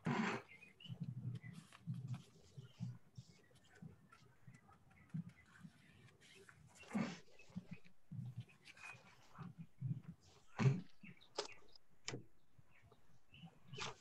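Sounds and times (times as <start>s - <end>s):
faint knocks clicks and rustles: 0.8s - 14.0s.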